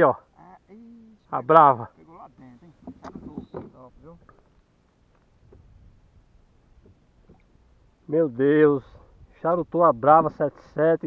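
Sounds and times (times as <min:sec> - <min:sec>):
man talking: 0:00.0 - 0:04.3, 0:08.1 - 0:11.0
faint low background hum: 0:00.0 - 0:11.0.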